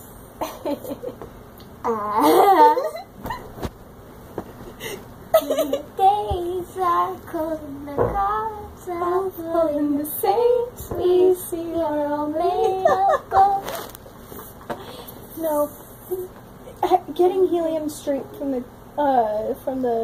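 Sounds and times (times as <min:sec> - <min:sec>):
girl singing with helium voice: 0:05.4 - 0:14.0, 0:15.3 - 0:20.0.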